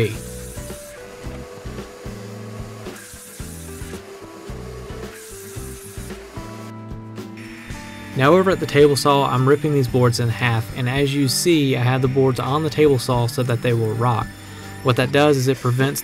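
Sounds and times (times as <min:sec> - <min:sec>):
quiet background music: 0:00.0 - 0:16.0.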